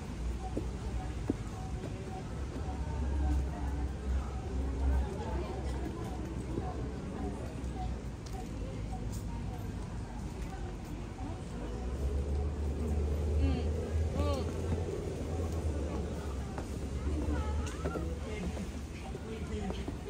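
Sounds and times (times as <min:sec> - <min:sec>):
low rumble of traffic: 0:00.0 - 0:20.0
people's voices: 0:00.0 - 0:20.0.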